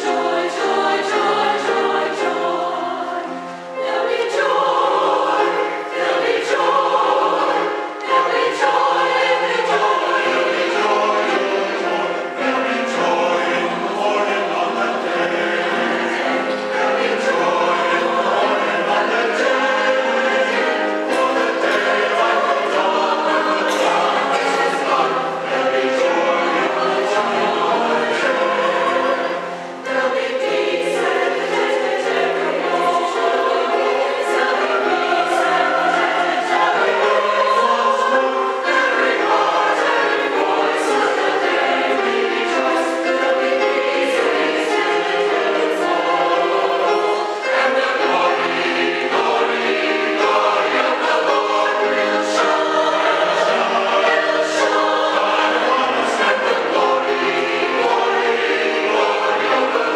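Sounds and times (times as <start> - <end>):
choir singing: 0.0 - 59.9.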